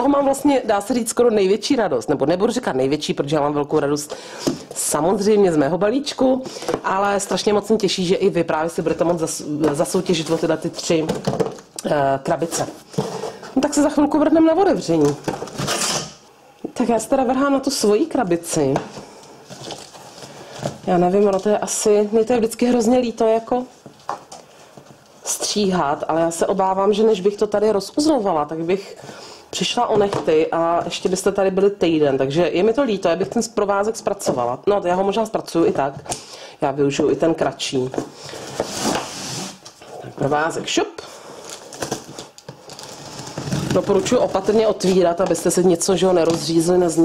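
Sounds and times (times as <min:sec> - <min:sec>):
soft scrape: 0:38.4 - 0:39.7.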